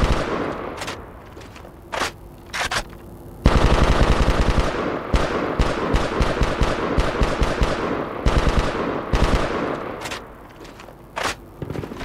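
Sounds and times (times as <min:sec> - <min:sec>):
machine-gun fire: 0:00.0 - 0:01.1, 0:03.4 - 0:10.3.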